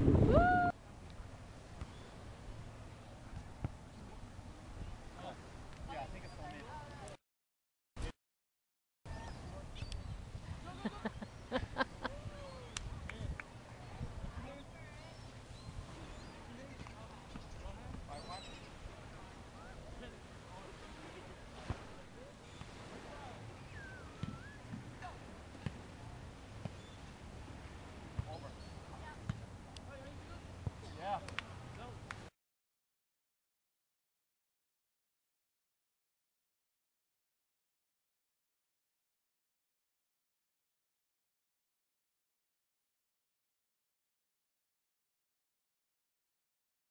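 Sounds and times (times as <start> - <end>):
wind rumble on microphone: 0.0 - 6.0, 9.1 - 29.6
faint distant indistinct sounds: 9.1 - 32.3.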